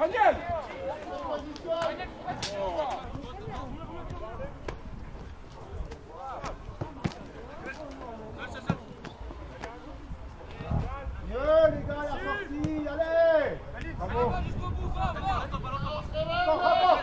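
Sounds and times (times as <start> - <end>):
ball being kicked: 5.9 - 7.9.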